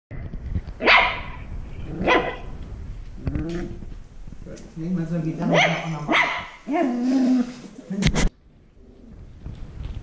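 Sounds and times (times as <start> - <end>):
puppy barking: 0.8 - 1.4, 2.0 - 2.5, 5.4 - 6.9.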